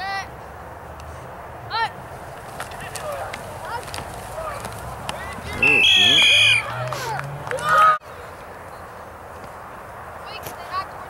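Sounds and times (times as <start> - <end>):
spectators shouting: 5.2 - 8.0
loud shout: 5.4 - 8.0
referee's whistle: 5.6 - 6.7.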